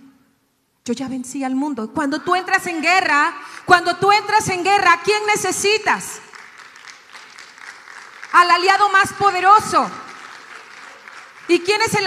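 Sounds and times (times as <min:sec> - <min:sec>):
faint audience applause: 0:06.1 - 0:12.0.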